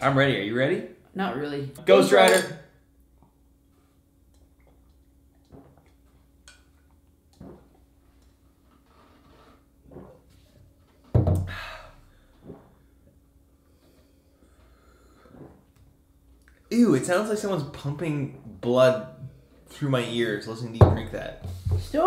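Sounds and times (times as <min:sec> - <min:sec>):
people gulping beer: 0:04.4 - 0:06.0, 0:07.3 - 0:07.8, 0:11.4 - 0:12.9, 0:14.6 - 0:15.8.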